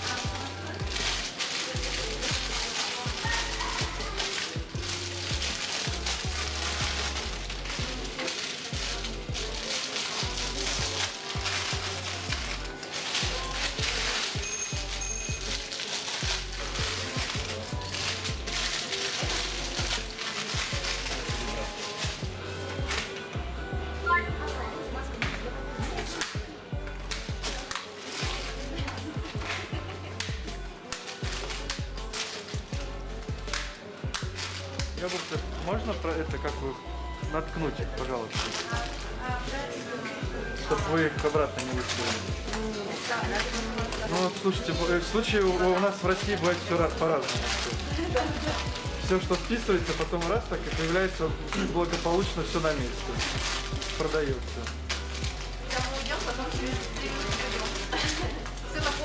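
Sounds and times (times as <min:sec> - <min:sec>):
background music: 0:00.0 - 0:59.0
wrapped sweets rustling into bin bag: 0:00.0 - 0:59.0.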